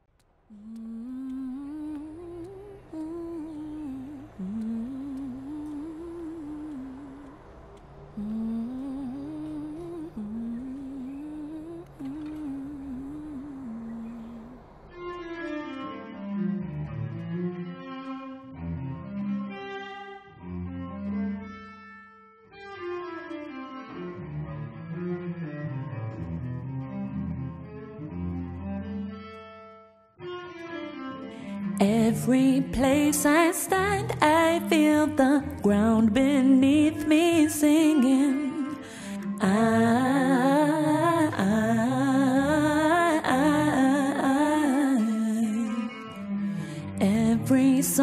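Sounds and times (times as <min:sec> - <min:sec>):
woman humming a slow melody: 0:00.5 - 0:07.4, 0:08.2 - 0:14.6, 0:31.8 - 0:48.0.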